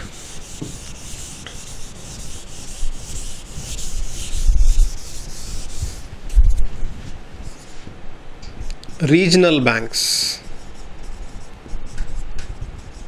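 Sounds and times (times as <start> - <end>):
eraser wiping whiteboard: 0.0 - 7.9, 8.6 - 13.0.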